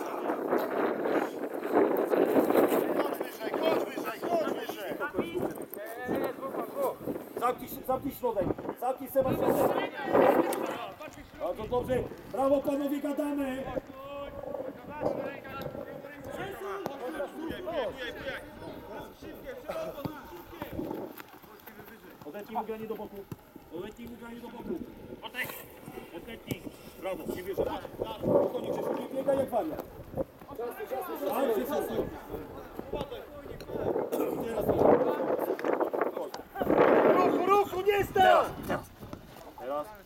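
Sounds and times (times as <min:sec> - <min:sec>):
voices shouting outdoors: 0:30.4 - 0:33.4, 0:36.4 - 0:39.0.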